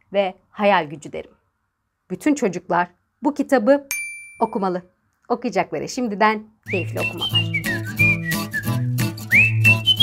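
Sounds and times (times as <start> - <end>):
whistled tune: 6.7 - 10.0.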